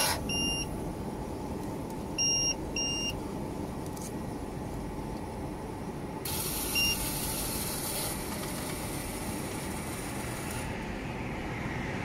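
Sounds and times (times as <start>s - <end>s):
short electronic beep: 0.3s - 0.7s, 6.8s - 7.1s
water spraying hiss: 6.3s - 8.0s.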